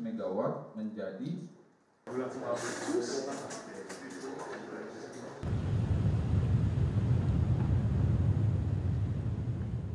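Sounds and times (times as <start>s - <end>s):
outdoor ambient hiss: 1.7s - 9.9s
steady low rumble: 5.4s - 9.9s.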